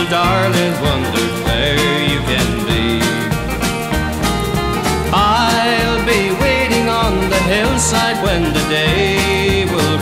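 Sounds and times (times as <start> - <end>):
country band instrumental: 0.0 - 10.0.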